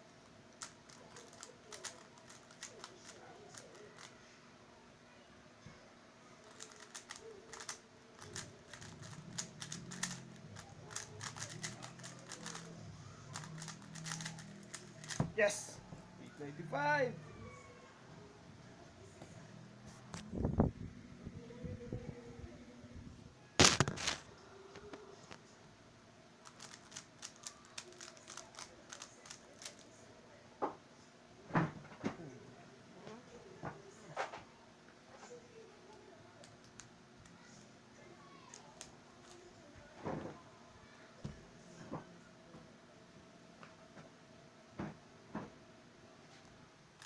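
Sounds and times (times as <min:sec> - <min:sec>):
speed cube plastic clicks: 0:00.6 - 0:04.1, 0:06.5 - 0:12.7, 0:13.3 - 0:15.2, 0:26.4 - 0:29.8
plastic puzzle cube clicks: 0:10.9 - 0:12.6.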